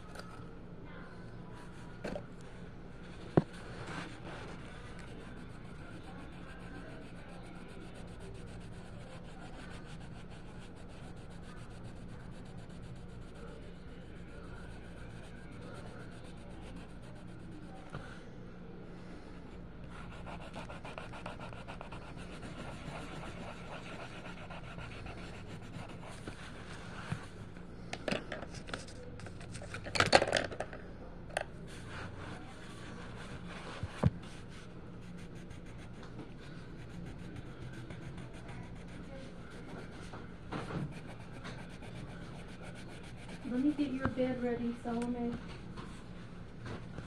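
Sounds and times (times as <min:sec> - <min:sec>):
pencil scratching on paper: 0:03.4 - 0:17.9, 0:19.9 - 0:26.6, 0:31.7 - 0:40.0, 0:40.6 - 0:44.0.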